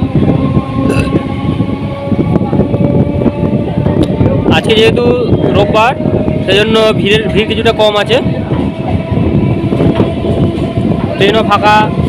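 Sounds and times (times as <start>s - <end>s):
train wheels rumbling on track: 0.0s - 12.0s.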